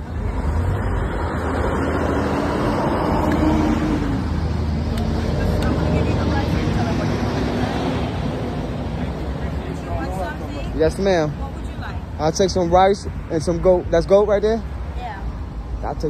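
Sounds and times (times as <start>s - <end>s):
vehicle engine hum: 0.0s - 16.0s.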